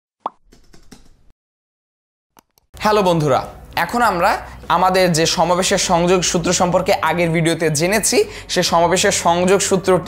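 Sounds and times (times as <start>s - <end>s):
keyboard typing clicks: 0.5s - 1.2s.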